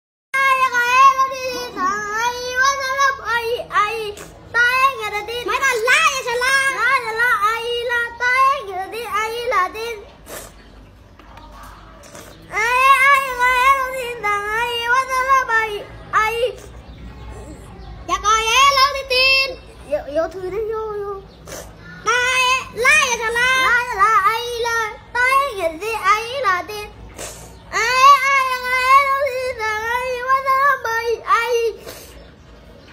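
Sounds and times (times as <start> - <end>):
boy chanting: 0.4 - 10.0, 12.1 - 26.9, 27.6 - 31.9.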